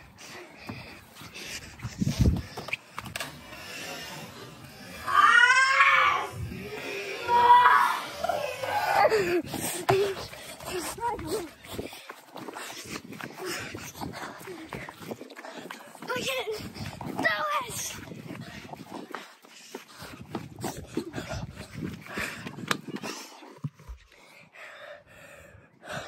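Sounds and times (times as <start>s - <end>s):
wind on microphone: 0.8s - 3.4s, 6.0s - 24.0s.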